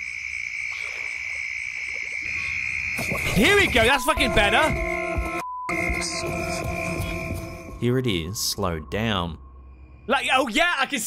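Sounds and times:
night insects trilling: 0.0 - 4.2, 5.7 - 10.1.

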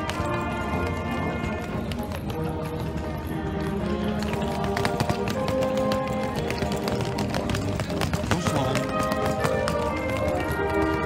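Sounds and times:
brass band playing: 0.0 - 11.0
suitcase wheels clattering on cobblestones: 0.0 - 11.0.

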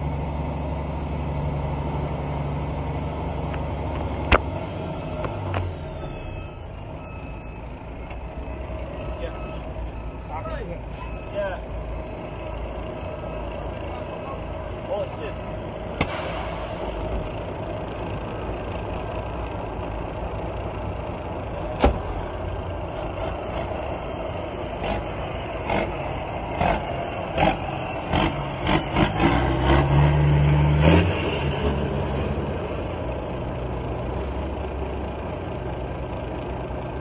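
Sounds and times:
truck engine running: 0.0 - 37.0.

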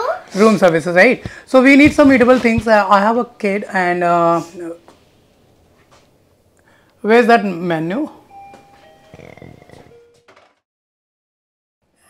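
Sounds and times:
soft chime tones: 8.1 - 10.2.

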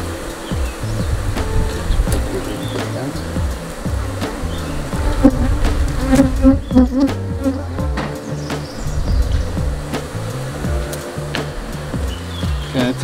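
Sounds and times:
background music with bass line: 0.0 - 13.0
bees buzzing: 0.0 - 13.0.

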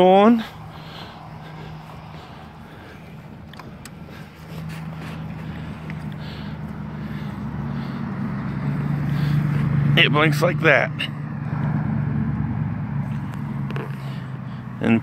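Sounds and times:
vehicle engine hum: 0.0 - 15.0.

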